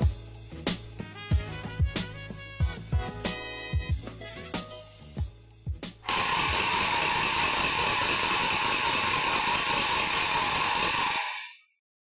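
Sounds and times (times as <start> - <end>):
harsh rattling noise: 6.1 - 11.5.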